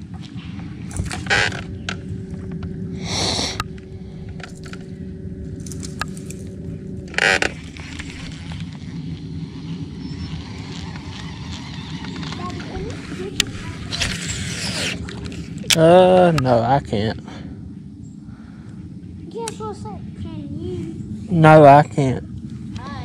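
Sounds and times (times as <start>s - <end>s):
steady low hum: 0.0s - 23.0s
thin whine: 0.0s - 23.0s.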